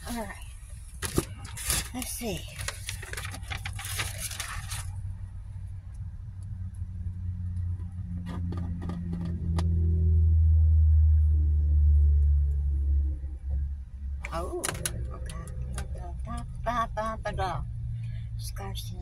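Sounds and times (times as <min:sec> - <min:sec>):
low rumble: 0:00.0 - 0:19.0
plastic and paper crinkling: 0:00.9 - 0:05.1.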